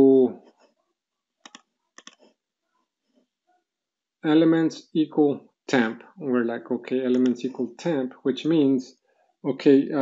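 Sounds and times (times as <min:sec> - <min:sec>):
faint computer mouse clicks: 0:01.4 - 0:02.3.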